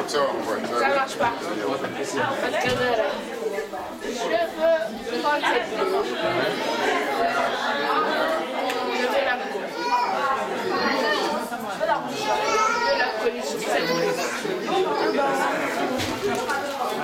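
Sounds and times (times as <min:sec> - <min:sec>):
crowd chatter in a large hall: 0:00.0 - 0:17.0.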